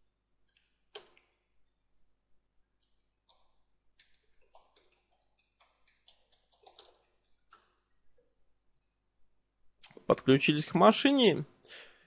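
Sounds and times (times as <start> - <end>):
faint keyboard clicks: 0.5 - 1.8, 2.8 - 8.3.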